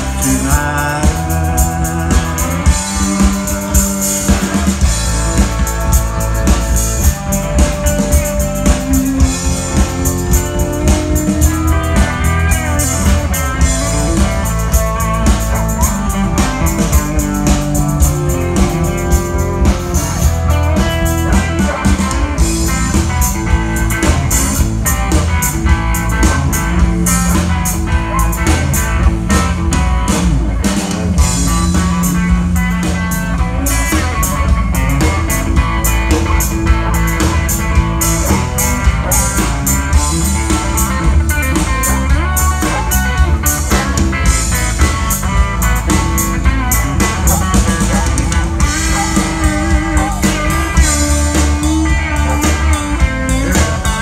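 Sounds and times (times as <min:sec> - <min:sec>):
blues-rock band playing: 0:00.0 - 0:54.0
electric guitar lead lines: 0:00.0 - 0:54.0.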